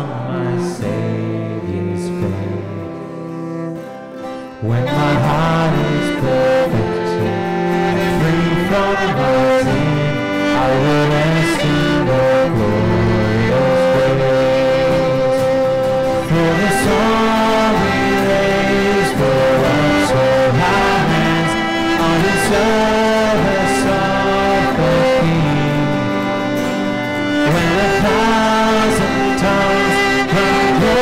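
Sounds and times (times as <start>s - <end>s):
congregation singing a hymn: 0.0s - 3.4s, 4.6s - 31.0s
instrumental accompaniment: 0.0s - 31.0s.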